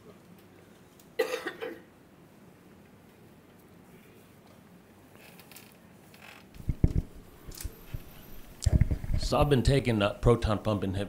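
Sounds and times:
person coughing: 1.2 - 1.9.

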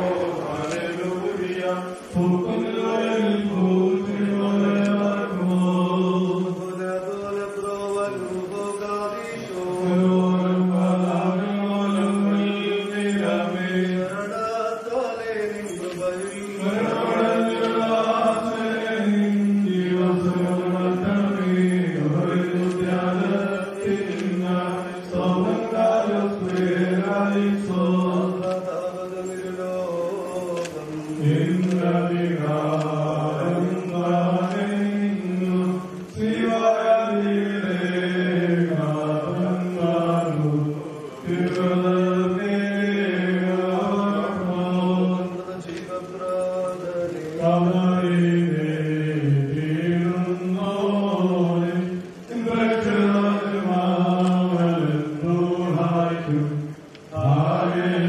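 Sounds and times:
man chanting a prayer: 0.0 - 58.0.

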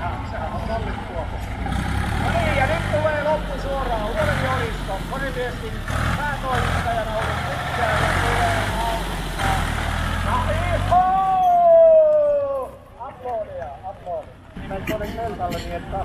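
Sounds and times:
tractor engine running: 0.0 - 11.2
voices: 0.0 - 16.0.

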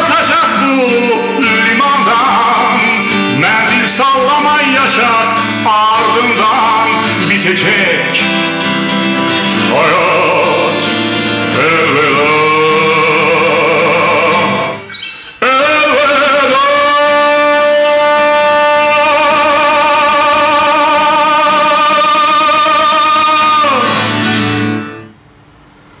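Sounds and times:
man singing: 0.0 - 8.5, 9.4 - 24.2
acoustic guitar: 0.0 - 26.0.

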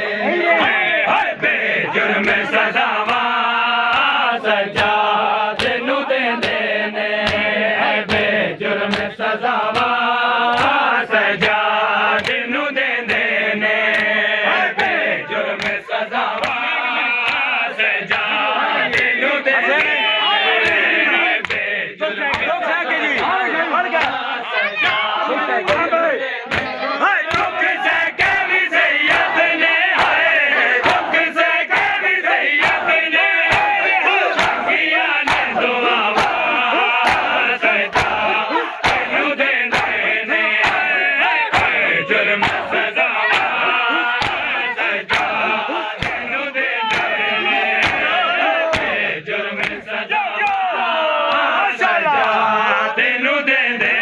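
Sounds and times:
men chanting in unison: 0.0 - 54.0
hands slapping chests: 1.9 - 14.2, 14.8 - 20.0, 20.6 - 21.7, 22.3 - 25.9, 26.5 - 51.6.

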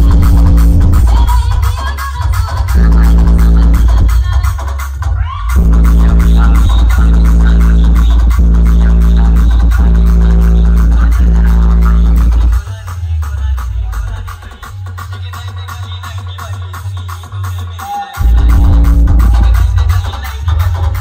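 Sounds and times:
rising sweep: 0.0 - 1.3, 18.2 - 19.8
loud electronic dance music: 0.0 - 21.0.

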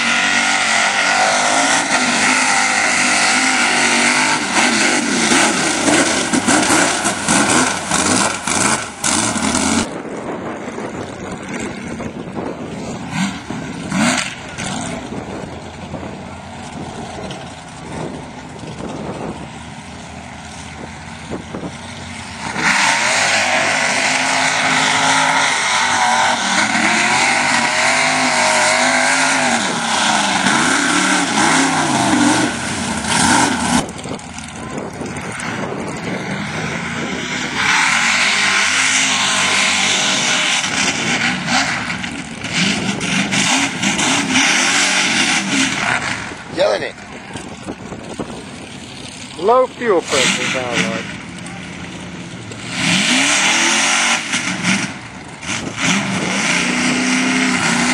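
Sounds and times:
truck engines revving high: 0.0 - 57.9.

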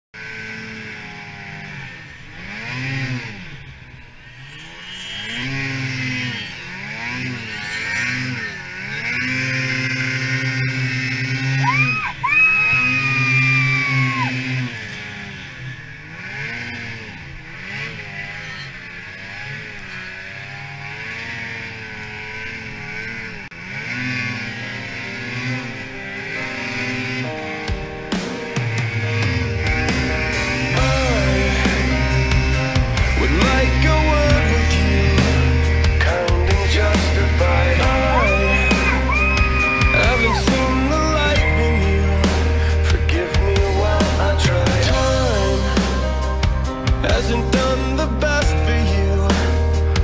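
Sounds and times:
snowmobile engine revving: 0.1 - 50.0
high-pitched whine: 0.8 - 20.1, 24.2 - 50.0.

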